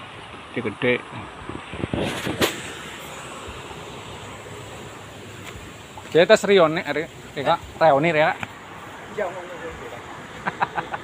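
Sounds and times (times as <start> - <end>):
outdoor rushing noise: 0.0 - 11.0.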